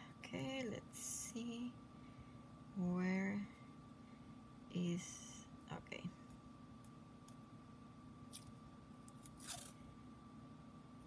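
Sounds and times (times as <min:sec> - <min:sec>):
tape tearing off roll: 0:09.2 - 0:09.8.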